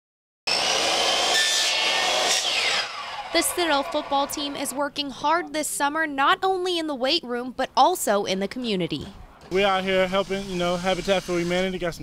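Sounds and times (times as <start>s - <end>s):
miter saw cutting wood: 0.5s - 5.0s, 9.5s - 11.9s.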